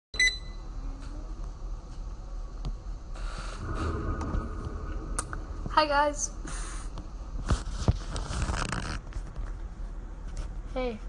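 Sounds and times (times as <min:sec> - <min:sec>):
low room hum: 0:00.2 - 0:11.0.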